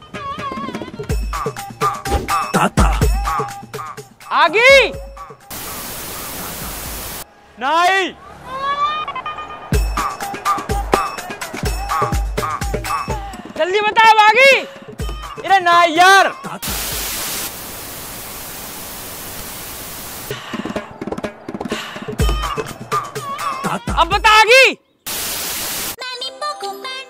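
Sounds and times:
television static hiss: 0:05.5 - 0:07.2, 0:16.6 - 0:20.3, 0:25.1 - 0:26.0.

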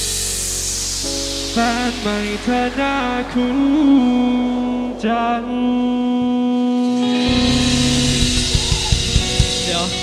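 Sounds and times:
hissing high cymbal wash: 0:00.0 - 0:10.0
low bass note: 0:07.2 - 0:10.0.

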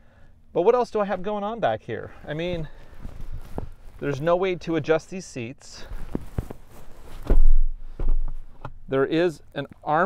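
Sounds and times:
armrest dull thump: 0:06.1 - 0:08.8.

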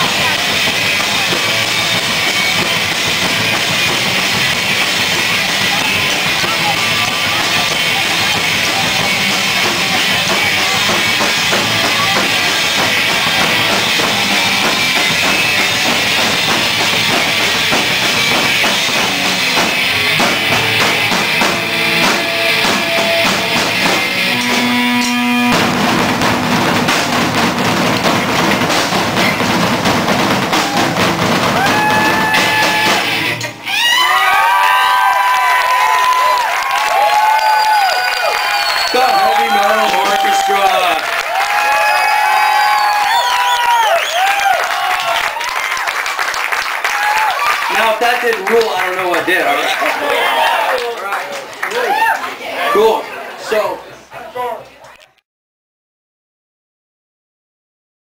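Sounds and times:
live heavy metal music: 0:00.0 - 0:33.7
crowd cheering and whooping: 0:30.4 - 0:48.2, 0:49.3 - 0:53.0.

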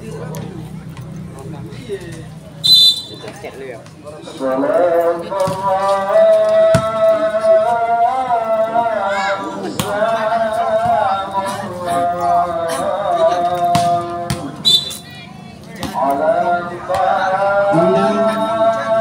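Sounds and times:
referee's whistle blast: 0:02.6 - 0:03.2, 0:14.6 - 0:15.0
person singing long wavering notes: 0:17.6 - 0:19.0.

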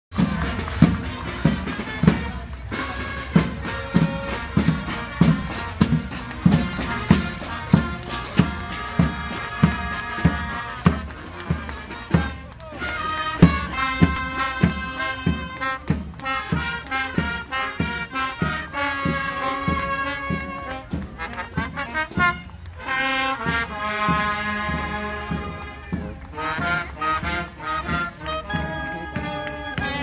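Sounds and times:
bass drum beat: 0:00.1 - 0:22.4
marching band brass playing: 0:00.1 - 0:30.0.

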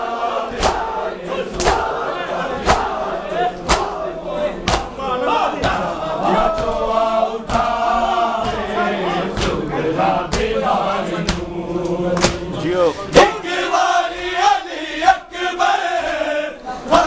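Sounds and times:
men chanting in unison: 0:00.0 - 0:17.0
hands slapping chests: 0:00.5 - 0:00.9, 0:01.5 - 0:02.0, 0:02.6 - 0:03.0, 0:03.6 - 0:04.0, 0:04.6 - 0:05.0, 0:05.6 - 0:07.8, 0:08.4 - 0:09.6, 0:10.3 - 0:10.6, 0:11.2 - 0:12.5.

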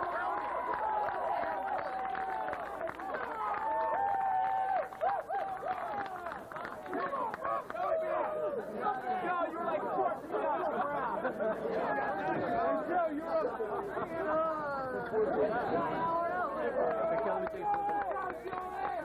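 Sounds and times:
crowd chattering: 0:00.0 - 0:03.6, 0:04.8 - 0:19.0.

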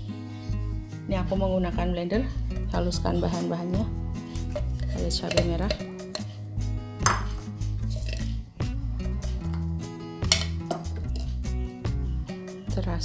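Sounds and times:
background music with bass line: 0:00.0 - 0:13.0
kitchenware knocking and clinking: 0:04.5 - 0:06.3, 0:07.0 - 0:07.4, 0:10.2 - 0:11.3.

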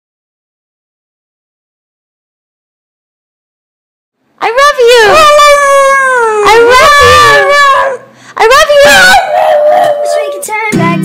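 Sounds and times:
loud howl: 0:04.8 - 0:10.4.

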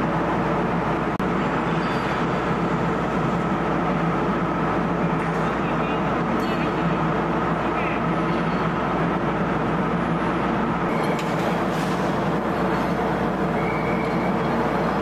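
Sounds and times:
loud machinery drone: 0:00.0 - 0:15.0.

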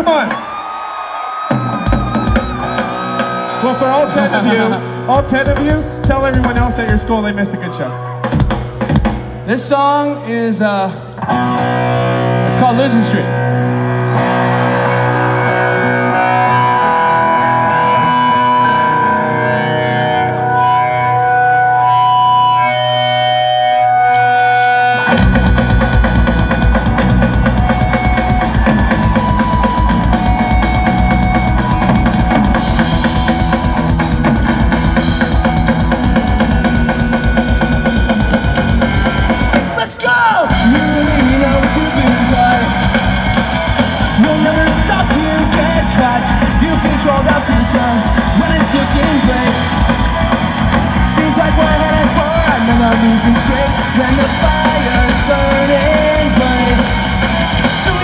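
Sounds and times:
pop-punk band playing loud: 0:00.0 - 0:58.0
guitar ringing notes: 0:10.9 - 0:39.8.

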